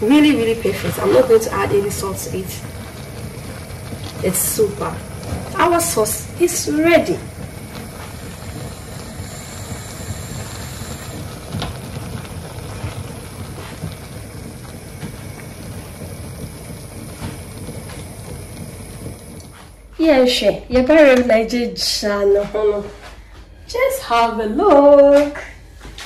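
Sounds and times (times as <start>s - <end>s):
stew sizzling in a frying pan: 0.0s - 20.1s.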